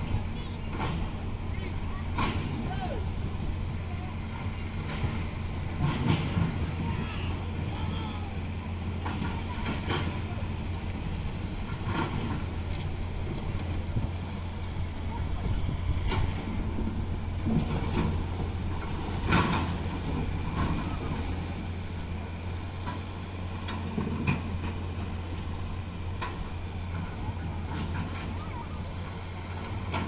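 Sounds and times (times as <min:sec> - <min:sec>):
truck diesel engine under load: 0:00.0 - 0:30.0.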